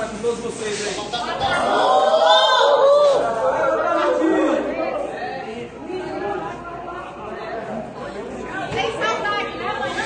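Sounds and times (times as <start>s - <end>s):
indistinct chatter of voices: 0.0s - 10.0s.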